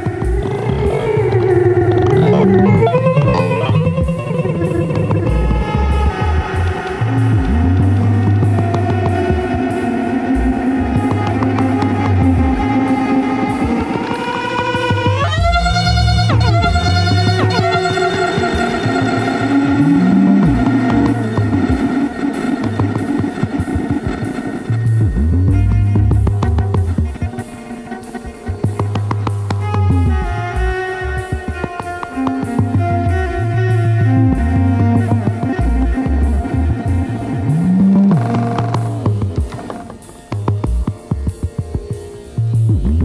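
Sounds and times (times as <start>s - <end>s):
low bass layer: 0.0s - 14.0s, 14.9s - 27.6s, 28.2s - 43.0s
bowed cello tones: 0.0s - 43.0s
rhythmic electronic pulse: 0.0s - 43.0s.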